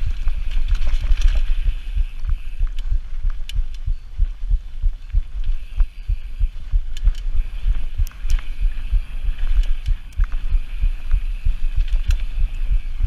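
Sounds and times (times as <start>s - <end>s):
bike clicks: 0.0s - 13.0s
wind buffeting camera: 0.0s - 13.0s.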